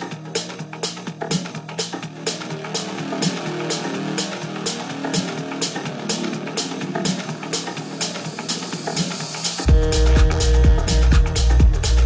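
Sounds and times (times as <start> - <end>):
techno music: 0.0 - 12.0.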